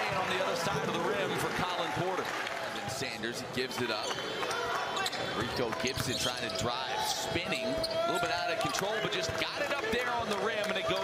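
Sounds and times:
crowd voices: 0.0 - 11.0.

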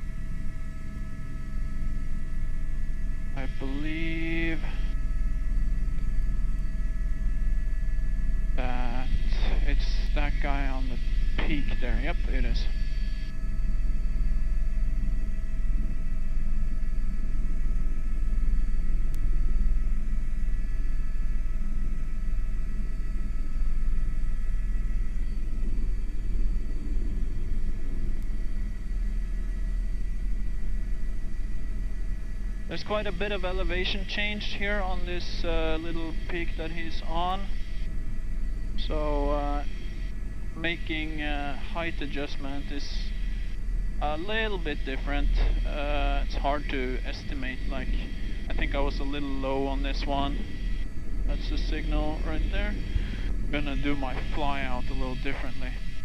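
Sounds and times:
helicopter rotor and engine rumble: 0.0 - 56.0
thin steady whine: 0.0 - 56.0
radio voice transmissions: 3.3 - 5.0, 8.6 - 13.2, 32.7 - 37.8, 38.8 - 56.0.

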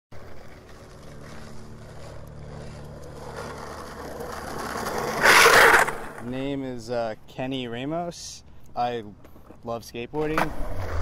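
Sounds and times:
loud rough scraping: 0.1 - 6.3
skateboard wheels rolling on asphalt: 0.1 - 6.6, 9.2 - 11.0
low steady hum: 0.2 - 9.7.

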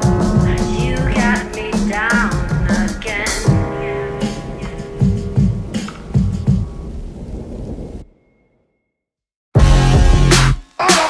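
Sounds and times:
music: 0.0 - 6.8, 9.6 - 11.0
low rumbling noise: 0.0 - 8.3.

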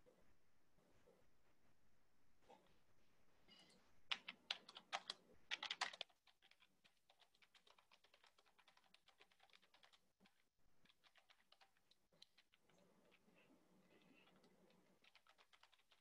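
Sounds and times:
typing on computer keyboard: 4.1 - 12.8, 14.1 - 16.0.

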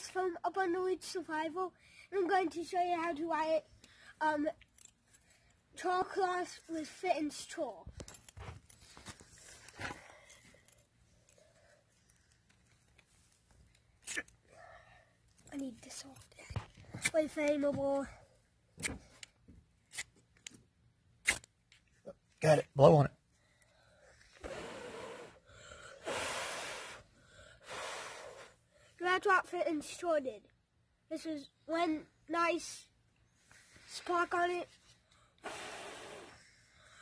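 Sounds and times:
child blowing on ember: 24.3 - 28.7, 35.4 - 37.0.

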